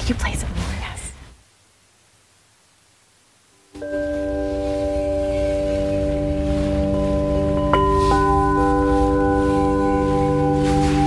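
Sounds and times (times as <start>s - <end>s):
crystal singing bowls ringing: 3.8s - 11.0s.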